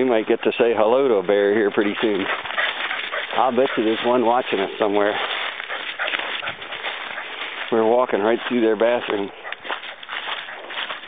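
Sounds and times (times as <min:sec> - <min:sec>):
footsteps in fallen leaves: 0:00.9 - 0:11.0.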